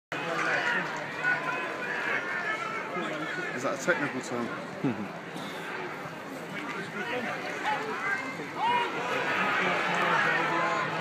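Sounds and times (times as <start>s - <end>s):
crowd voices calling and chattering: 0.1s - 11.0s.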